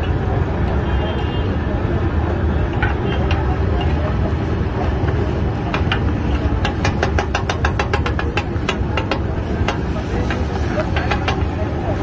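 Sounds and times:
metal spatula clacking on griddle: 0:02.8 - 0:04.3, 0:04.9 - 0:12.0.

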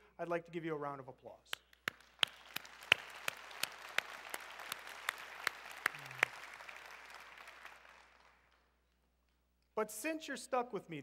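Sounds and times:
close sharp hand claps: 0:01.5 - 0:09.4
crowd applause: 0:02.0 - 0:08.5.

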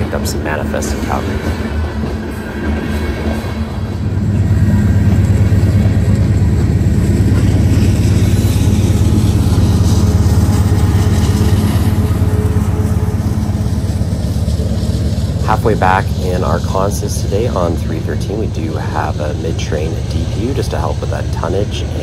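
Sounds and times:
diesel locomotive drone: 0:00.0 - 0:22.0
freight train rolling past: 0:00.0 - 0:22.0.

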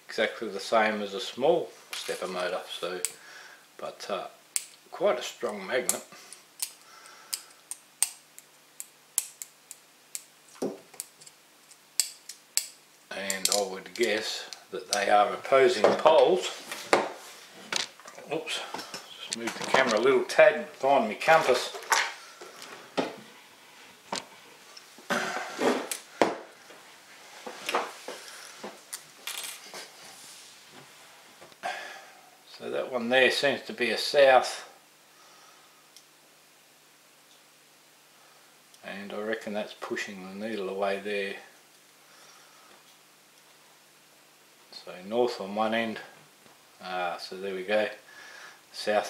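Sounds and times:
small metal parts clinking: 0:28.9 - 0:29.7.

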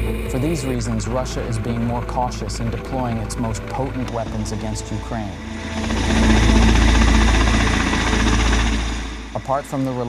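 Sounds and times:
helicopter engine rumble: 0:00.0 - 0:10.0
helicopter rotors beating: 0:00.0 - 0:10.0.

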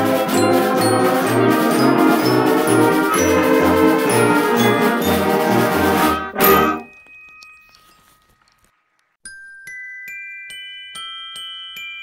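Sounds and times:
concert band chord: 0:00.0 - 0:06.8
mallet percussion notes ringing: 0:00.0 - 0:08.2.

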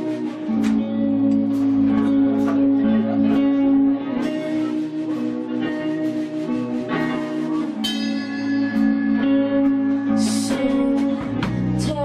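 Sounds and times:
guitar strumming chords: 0:00.0 - 0:12.0.

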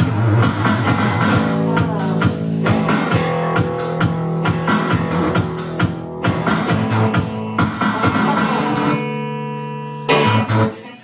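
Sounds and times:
drum kit with cymbal hits: 0:00.0 - 0:09.1
rock band playing: 0:00.0 - 0:10.7
guitar chords: 0:00.0 - 0:11.0.

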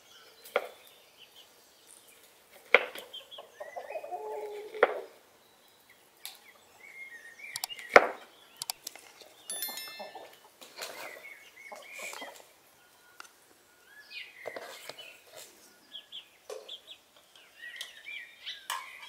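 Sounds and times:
birds chirping: 0:00.0 - 0:19.0
chickens clucking: 0:02.6 - 0:05.2, 0:09.7 - 0:12.5.

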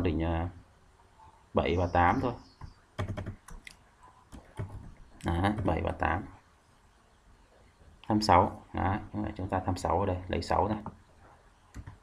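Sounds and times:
computer keyboard keys clicking: 0:03.0 - 0:04.9, 0:11.7 - 0:12.0.

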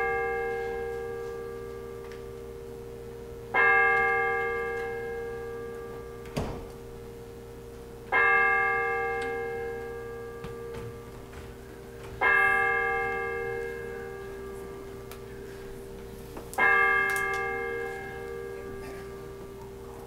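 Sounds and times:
bell tolling: 0:00.0 - 0:07.1, 0:08.1 - 0:19.9.

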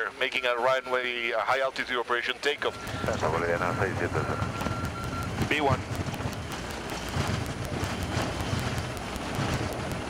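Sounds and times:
low runway rumble: 0:00.0 - 0:10.0
jet engine and air rush: 0:02.7 - 0:10.0.

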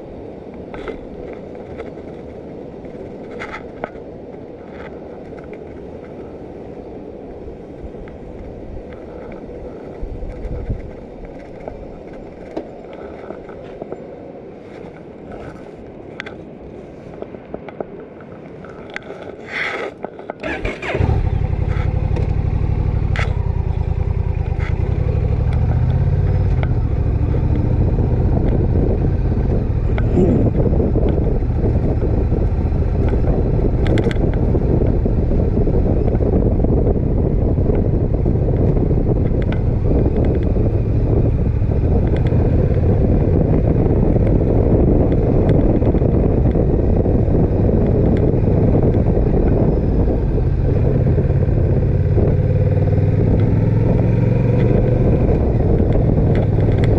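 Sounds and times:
motorcycle engine droning: 0:20.4 - 0:56.9.

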